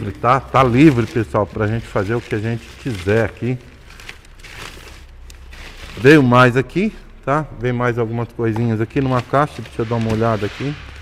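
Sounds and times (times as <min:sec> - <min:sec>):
plastic bag rustling: 0:00.0 - 0:11.0
steady low hum: 0:00.0 - 0:11.0.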